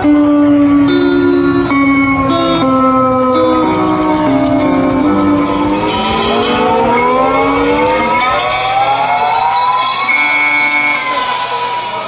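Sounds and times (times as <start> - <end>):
blues band holding rising note: 0.0 - 12.0.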